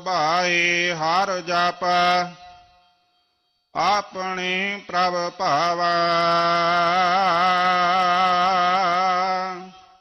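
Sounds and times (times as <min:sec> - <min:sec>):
man chanting a hymn: 0:00.0 - 0:02.5, 0:03.8 - 0:10.0.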